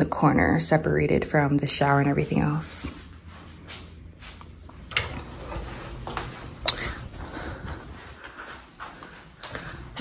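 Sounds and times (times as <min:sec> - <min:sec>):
soft footsteps on hardwood floor: 0:05.4 - 0:10.0.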